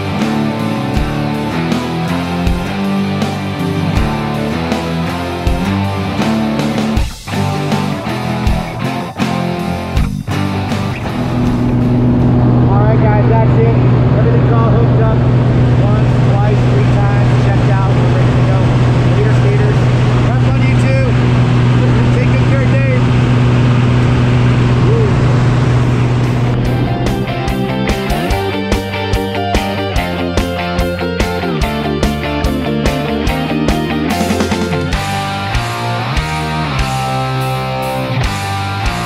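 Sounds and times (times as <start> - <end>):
propeller plane engine drone: 0.0 - 39.0
rock music: 0.0 - 39.0
people talking: 12.6 - 23.1, 24.8 - 25.3.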